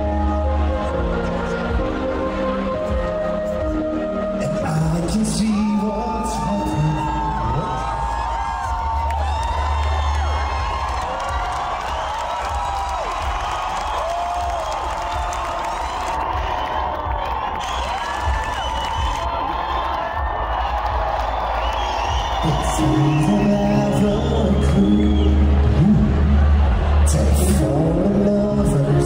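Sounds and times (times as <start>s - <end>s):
concert crowd cheering and whooping: 0.0s - 29.0s
low bass from stage: 0.0s - 29.0s.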